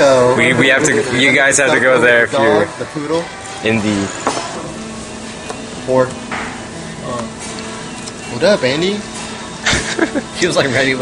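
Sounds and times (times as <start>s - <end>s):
music playing: 0.0s - 11.0s
room hum: 0.0s - 11.0s.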